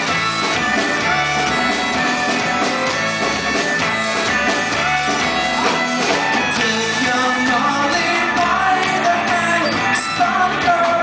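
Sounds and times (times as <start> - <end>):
drum kit: 0.0 - 11.0
electric guitar: 0.0 - 11.0.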